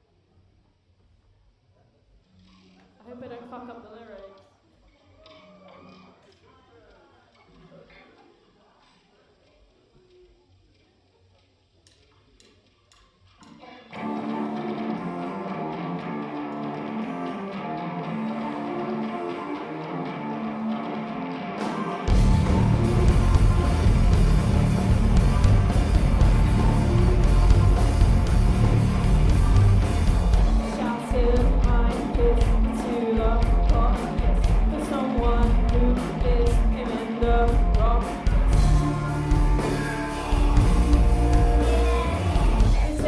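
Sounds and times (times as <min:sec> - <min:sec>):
bass guitar: 0:13.9 - 0:43.0
guitar playing riff: 0:13.9 - 0:43.0
drums: 0:16.8 - 0:43.0.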